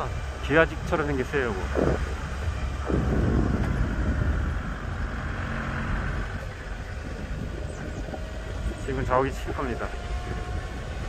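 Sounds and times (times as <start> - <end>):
vehicle rumbling: 0.0 - 11.0.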